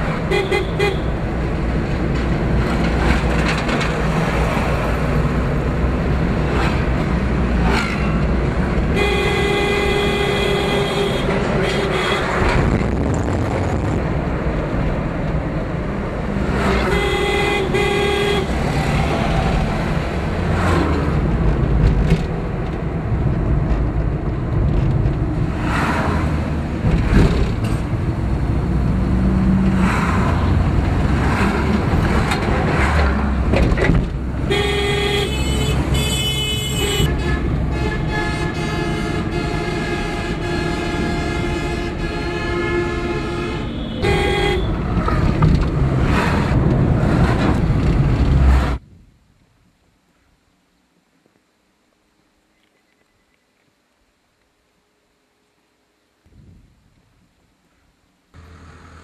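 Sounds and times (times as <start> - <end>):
vehicles passing: 0.0 - 49.1, 57.0 - 59.0
car engine and road rumble: 0.0 - 59.0
vehicle horns: 0.1 - 1.2, 8.8 - 12.6, 16.6 - 18.8, 34.4 - 45.2.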